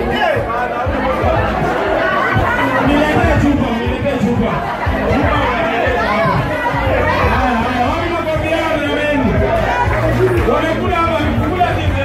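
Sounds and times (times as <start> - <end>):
overlapping chatter in a room: 0.0 - 12.0.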